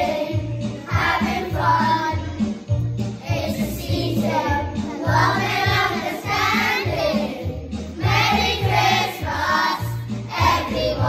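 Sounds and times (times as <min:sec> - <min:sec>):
children's choir singing: 0:00.0 - 0:11.0
instrumental backing track: 0:00.0 - 0:11.0.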